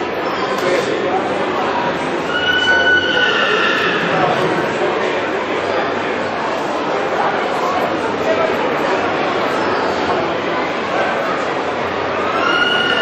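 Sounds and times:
crowd chatter: 0:00.0 - 0:13.0
horse whinnying: 0:02.3 - 0:04.5.

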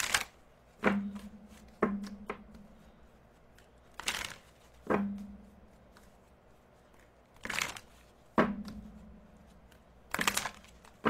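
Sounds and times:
cards being shuffled: 0:00.0 - 0:11.0
cards slapping: 0:00.0 - 0:11.0.

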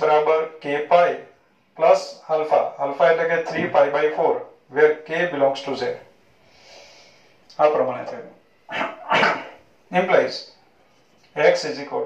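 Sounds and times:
man speaking drawn-out syllables: 0:01.8 - 0:06.0.

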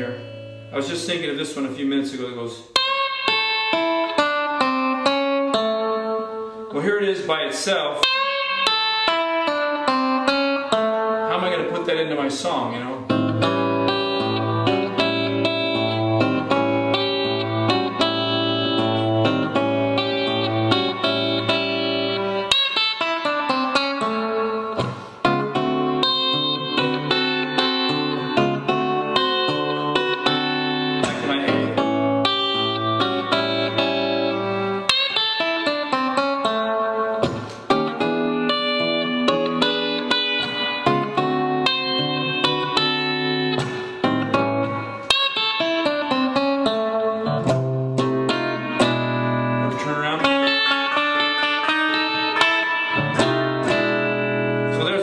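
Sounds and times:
electric guitar playing blues: 0:00.0 - 0:55.0.

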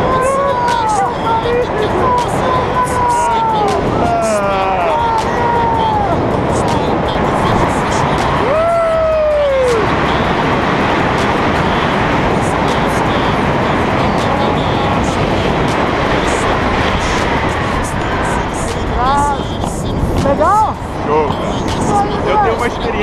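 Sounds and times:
man calling: 0:00.0 - 0:23.0
wind on microphone: 0:00.0 - 0:23.0.

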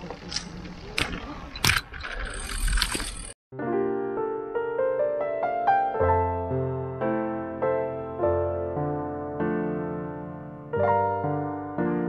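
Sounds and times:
bicycle rolling over cobblestones: 0:00.0 - 0:03.4.

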